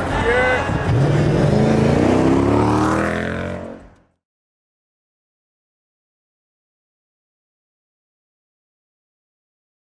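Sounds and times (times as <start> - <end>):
car engine accelerating: 0.8 - 4.1.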